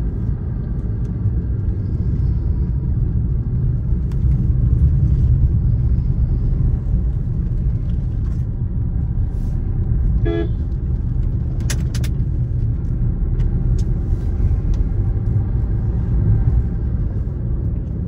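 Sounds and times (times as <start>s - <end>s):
car driving rumble: 0.0s - 18.0s
short horn toot: 10.2s - 10.6s.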